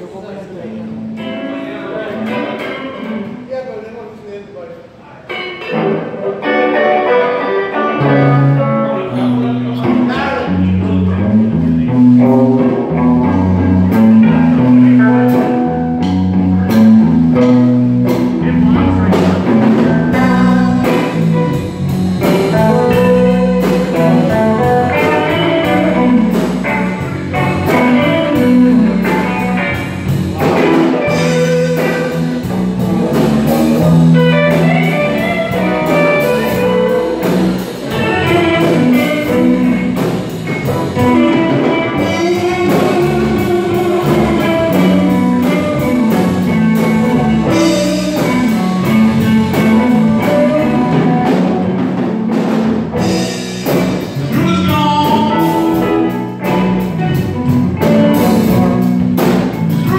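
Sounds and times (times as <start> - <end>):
live rock band playing: 0.0 - 3.5, 4.9 - 59.9.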